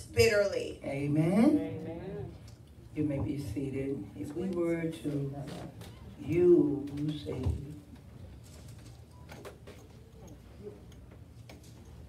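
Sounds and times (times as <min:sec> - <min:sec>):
woman speaking over microphone: 0:00.0 - 0:01.7, 0:02.9 - 0:05.6.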